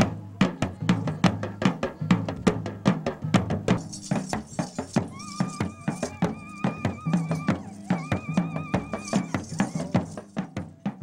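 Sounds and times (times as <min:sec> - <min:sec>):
barrel drums beaten with sticks: 0:00.0 - 0:11.0
high wavering held note: 0:05.1 - 0:10.0.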